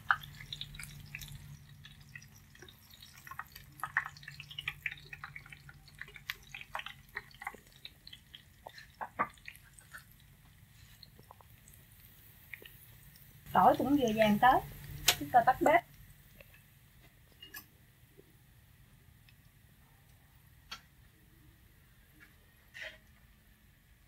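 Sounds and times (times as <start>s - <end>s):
small pops and crackles: 0.0s - 14.0s, 14.7s - 17.7s
garlic frying in oil: 0.0s - 17.8s.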